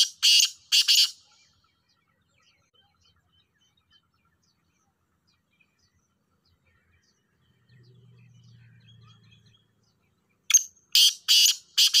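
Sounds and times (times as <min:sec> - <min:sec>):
faint distant bird chirps: 0:00.0 - 0:12.0.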